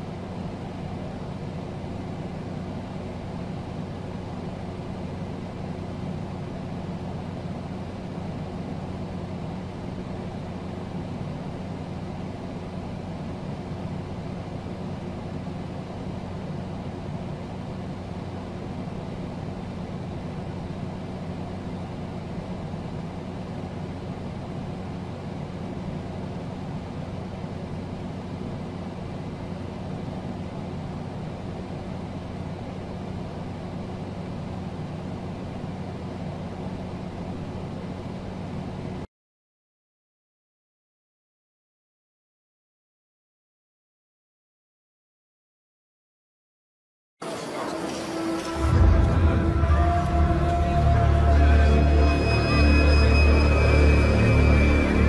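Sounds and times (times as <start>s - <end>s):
steady low hum: 0.0s - 39.1s, 47.2s - 55.0s.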